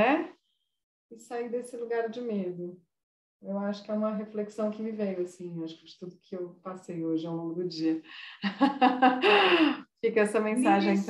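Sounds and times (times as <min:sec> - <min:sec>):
woman laughing: 0:08.4 - 0:09.8.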